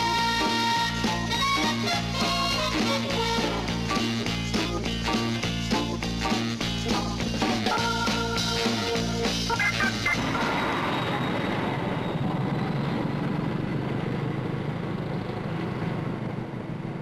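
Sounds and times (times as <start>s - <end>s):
music: 0.0s - 10.2s
train rumbling: 0.0s - 17.0s.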